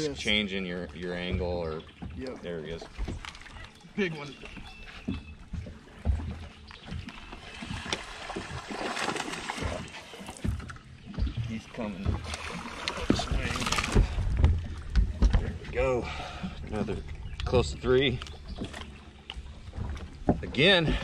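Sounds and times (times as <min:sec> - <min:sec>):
water splashing: 0:00.0 - 0:21.0
fish handling noises: 0:00.8 - 0:21.0
low thuds of fish on deck: 0:04.6 - 0:21.0.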